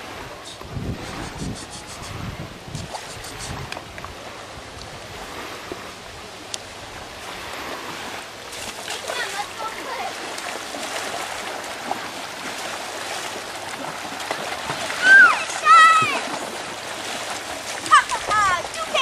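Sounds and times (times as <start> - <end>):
water splashing: 0.0 - 19.0.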